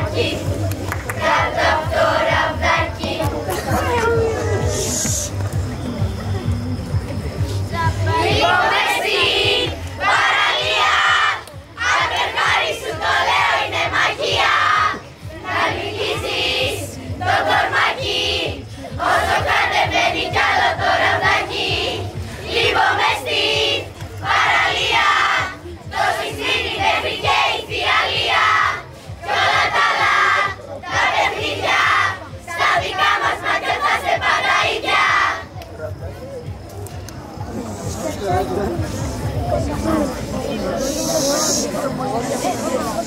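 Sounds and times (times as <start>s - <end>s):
girls chanting a cheer: 0.0s - 3.9s, 7.8s - 35.5s.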